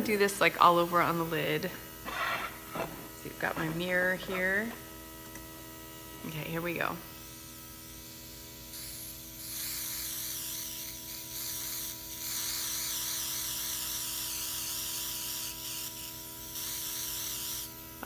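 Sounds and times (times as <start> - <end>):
compressor hum: 0.0 - 8.6
airbrush hissing spray: 2.1 - 4.5, 8.7 - 17.7.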